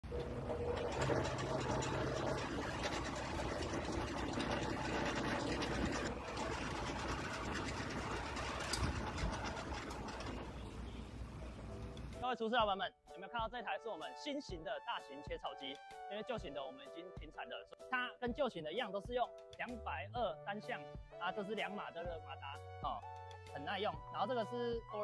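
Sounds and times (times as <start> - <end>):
motor hum: 0.0 - 12.2
chaff cutter clattering: 0.1 - 11.1.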